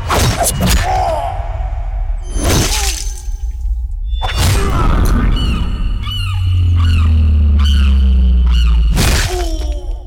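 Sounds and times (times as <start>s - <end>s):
low drone of film score: 0.0s - 10.0s
squawking bird calls: 5.3s - 9.0s.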